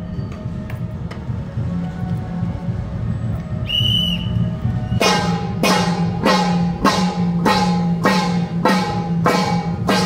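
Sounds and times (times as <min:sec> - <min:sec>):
whistle blast: 0:03.6 - 0:05.4
low drum beating: 0:04.2 - 0:10.0
hand cymbals clashing: 0:05.0 - 0:10.0.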